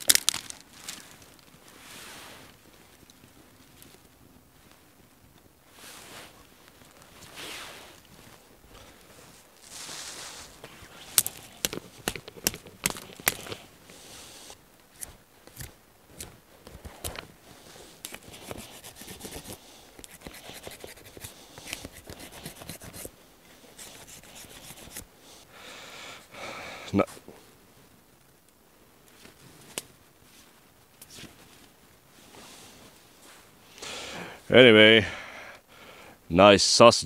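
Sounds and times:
knife scraping bark: 9.7s - 16.3s, 18.0s - 23.1s, 23.7s - 25.1s.

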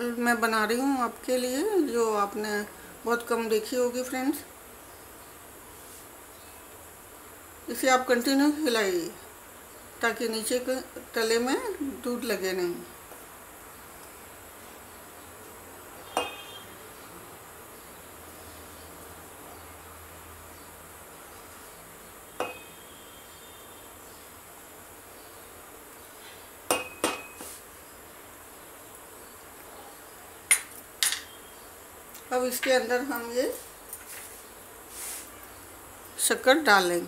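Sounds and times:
faint steady hiss: 0.0s - 37.0s.

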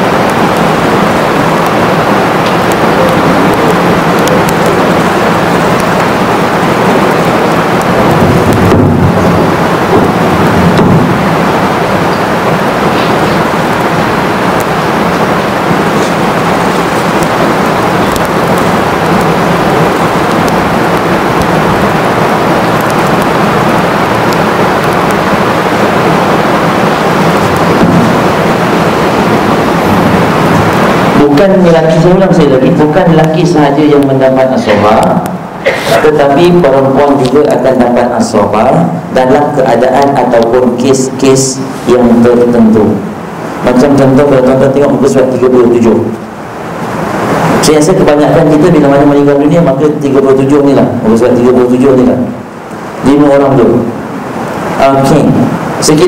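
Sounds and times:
heavy rain rushing: 0.0s - 56.0s.

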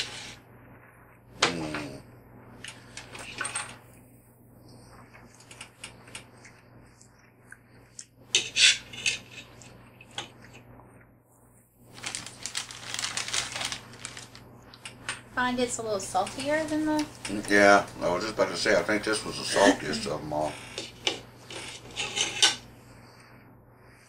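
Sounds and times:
rustling and scraping: 0.0s - 0.4s, 2.7s - 4.0s, 8.3s - 19.7s, 20.3s - 22.7s.

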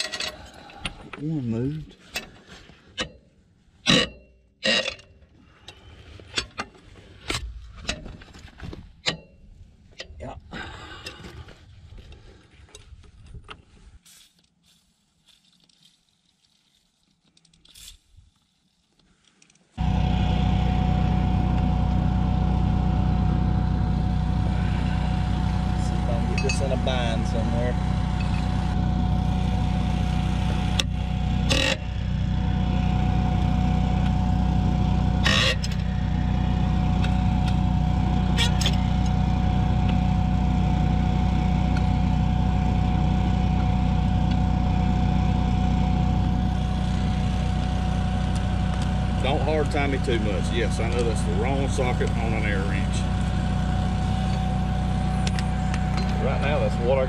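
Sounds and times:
small engine running: 19.8s - 57.0s.

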